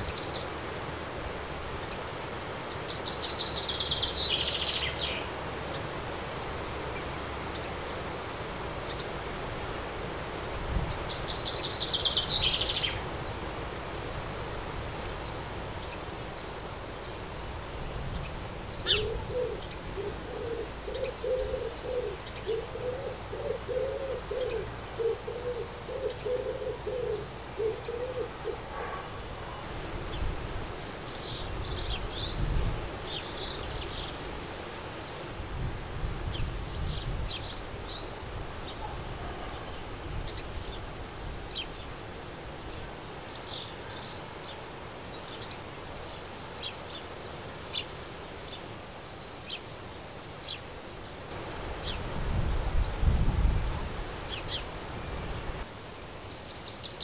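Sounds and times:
songbirds chirping: 0.0s - 57.0s
pigeon cooing: 18.8s - 29.6s.

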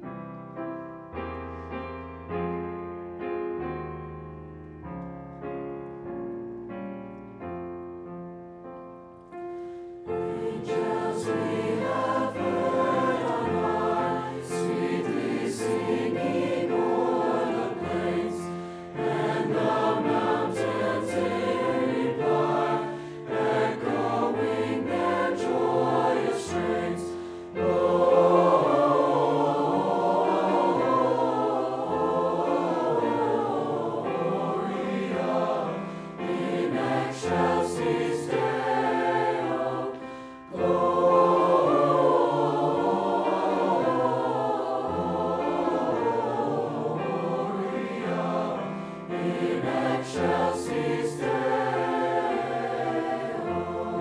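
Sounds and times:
choir singing: 10.1s - 54.0s.

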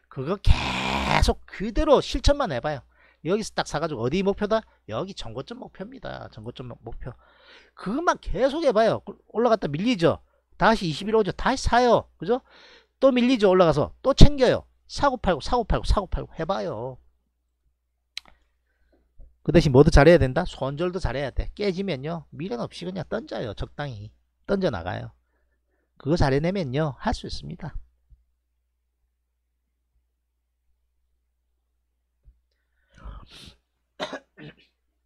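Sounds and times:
man clearing throat: 34.0s - 34.8s
man coughing: 34.0s - 34.8s.

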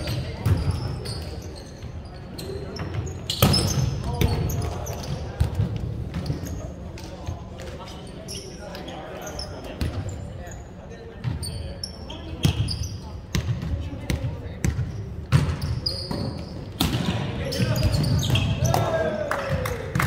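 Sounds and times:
sneaker squeaks: 0.0s - 18.9s.

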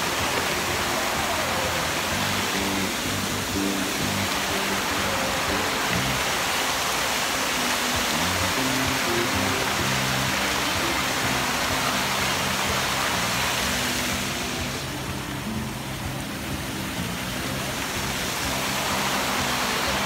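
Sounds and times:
fountain jets splashing: 0.0s - 20.0s
music with low notes: 0.0s - 20.0s.

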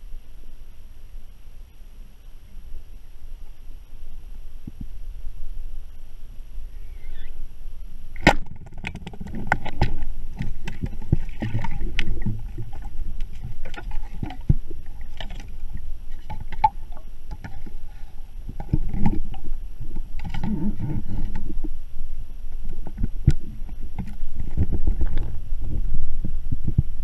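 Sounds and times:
low rumble of water: 0.0s - 27.0s
underwater clicks and knocks: 8.2s - 15.5s, 16.1s - 17.8s, 18.5s - 21.7s, 22.6s - 26.9s.

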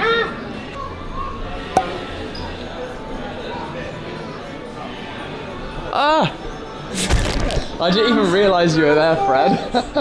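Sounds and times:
sharp knock: 1.8s - 2.1s.

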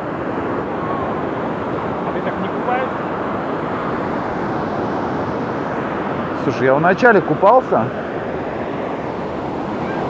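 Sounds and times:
ocean surf rushing: 0.0s - 10.0s
wind on microphone: 0.0s - 10.0s.

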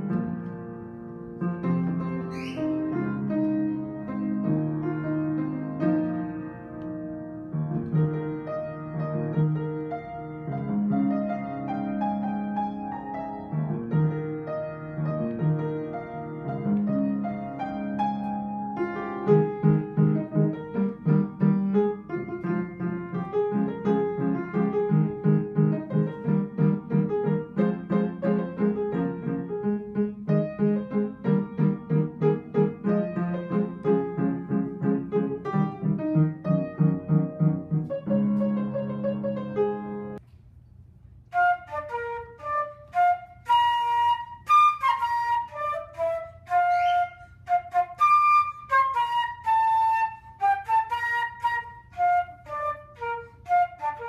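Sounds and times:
upright piano chords: 0.0s - 40.2s
flute melody: 1.7s - 40.2s, 41.3s - 54.0s.

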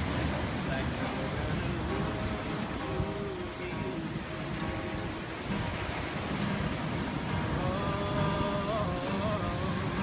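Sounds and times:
acoustic guitar notes: 0.0s - 10.0s
ocean surf: 0.0s - 10.0s
wind: 0.0s - 10.0s.

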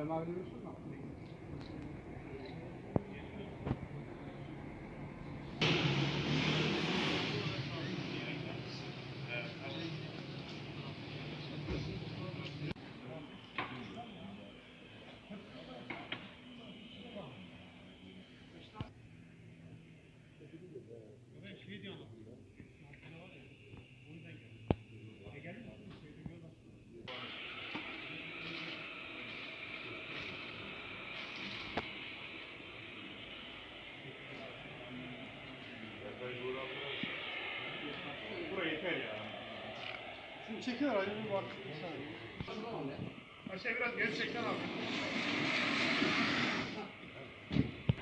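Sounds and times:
people talking in background: 0.0s - 5.6s, 7.1s - 48.0s
hiss of street noise: 0.0s - 20.6s, 27.0s - 48.0s.

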